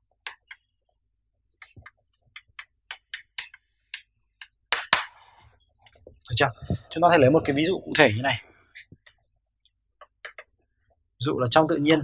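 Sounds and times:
chalk tapping and scratching on blackboard: 0:00.0 - 0:06.0, 0:08.7 - 0:10.7.

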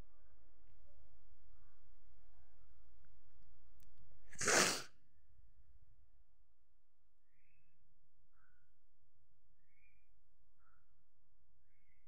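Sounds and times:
person sneezing: 0:04.4 - 0:04.9.

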